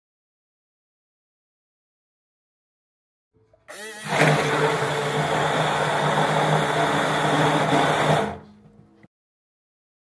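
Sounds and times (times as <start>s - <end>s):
immersion blender motor running: 3.7s - 8.4s.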